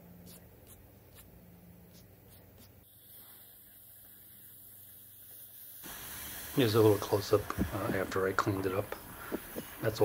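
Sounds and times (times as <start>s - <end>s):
faint hiss: 1.9s - 10.0s.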